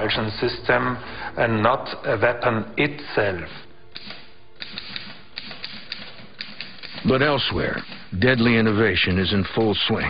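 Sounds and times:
typewriter keys clacking: 4.0s - 9.9s.

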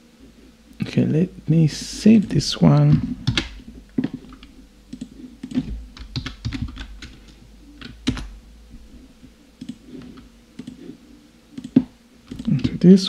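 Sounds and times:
keyboard typing: 3.0s - 8.4s, 9.6s - 10.9s, 11.5s - 12.8s.

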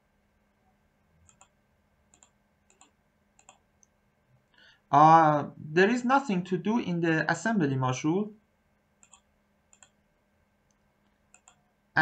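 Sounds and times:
computer mouse clicking: 1.2s - 3.9s, 9.0s - 10.0s, 11.0s - 11.6s
breath: 4.5s - 4.9s
man's voice: 4.9s - 8.4s.

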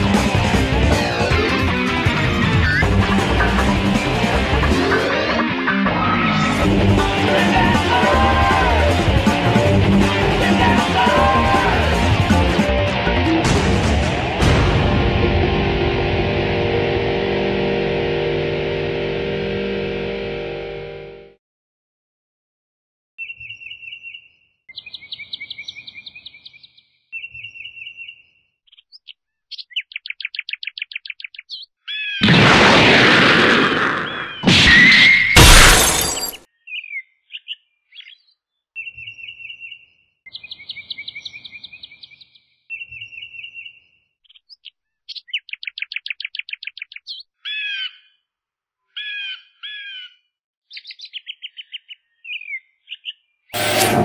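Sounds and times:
bird chirping and trilling: 23.2s - 32.2s, 36.6s - 48.2s
loud noise bursts: 53.6s - 54.0s.

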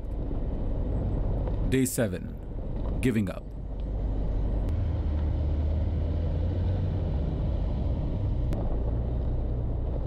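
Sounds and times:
tyres on rough unpaved road: 0.0s - 10.0s
car engine: 2.4s - 10.0s.

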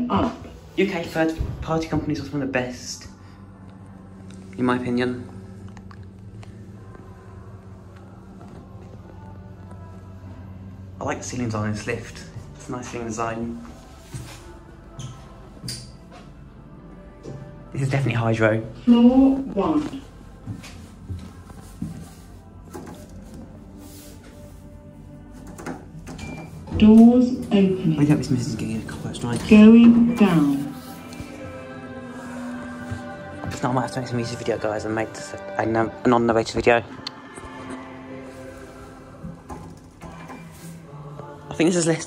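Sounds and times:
lift low steady hum: 0.0s - 42.0s.

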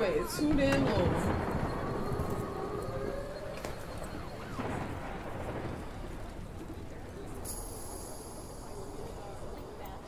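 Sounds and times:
wailing siren: 0.0s - 7.0s.

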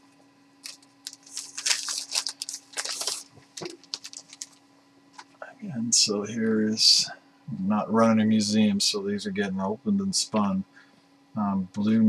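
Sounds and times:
plastic wrap tearing and crinkling: 0.6s - 4.6s.

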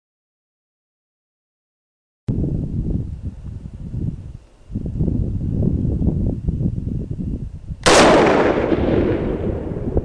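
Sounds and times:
low rumbling noise: 2.3s - 10.0s
rifle shot: 7.8s - 10.0s.

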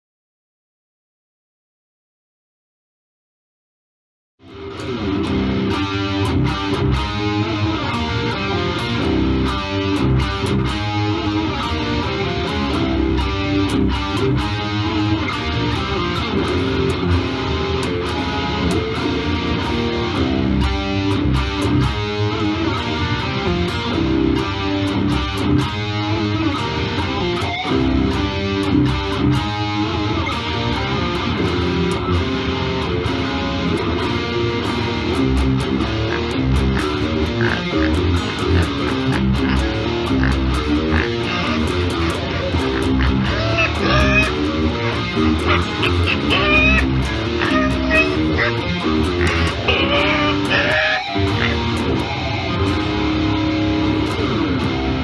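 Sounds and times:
electric guitar riff: 4.4s - 55.0s.

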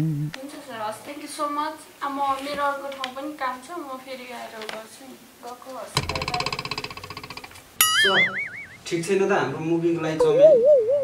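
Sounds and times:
wobbling boing: 6.0s - 9.0s, 10.2s - 11.0s
pulsing buzzy tone: 10.2s - 11.0s.

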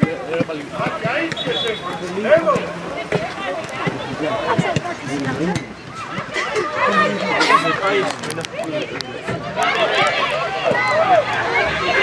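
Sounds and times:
players and coach shouting: 0.0s - 12.0s.

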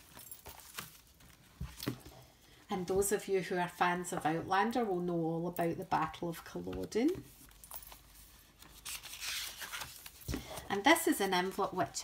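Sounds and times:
page rustling: 0.0s - 2.1s, 6.7s - 11.8s.

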